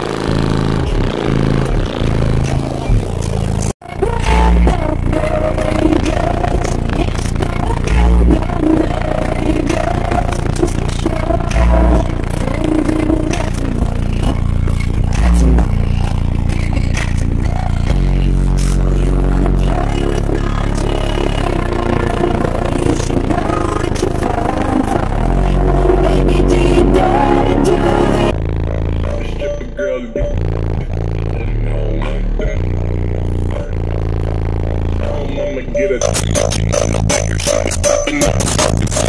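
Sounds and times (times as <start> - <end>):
loud bass music: 0.0 - 39.0.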